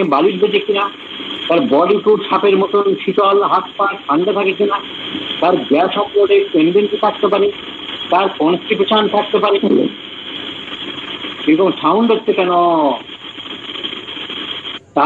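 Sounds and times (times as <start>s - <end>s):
person lecturing: 0.0s - 10.0s, 11.4s - 13.1s.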